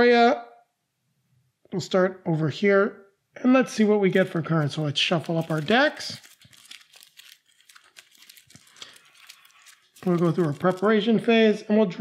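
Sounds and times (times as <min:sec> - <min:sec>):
playing cards being shuffled: 0:04.0 - 0:11.3.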